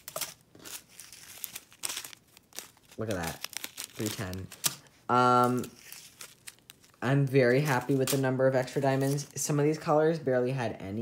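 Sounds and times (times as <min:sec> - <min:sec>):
plastic bags crinkling: 0:00.0 - 0:09.5.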